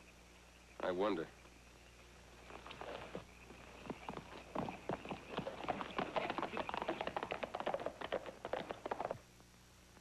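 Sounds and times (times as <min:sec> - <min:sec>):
horse hooves clattering: 0:02.4 - 0:09.2.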